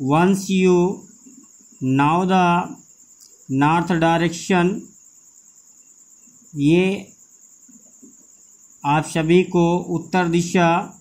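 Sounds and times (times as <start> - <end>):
man talking: 0.0 - 1.1, 1.8 - 2.8, 3.5 - 4.9, 6.6 - 7.2, 8.8 - 11.0.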